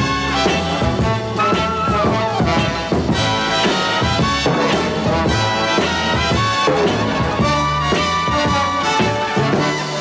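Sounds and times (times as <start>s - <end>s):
brass: 0.0s - 10.0s
orchestra playing swing music: 0.0s - 10.0s
steady drum beat: 0.0s - 10.0s.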